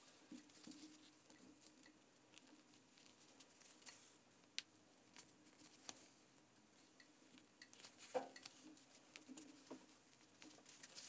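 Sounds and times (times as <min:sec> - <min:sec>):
fabric rustling during stitching: 0:07.3 - 0:11.0.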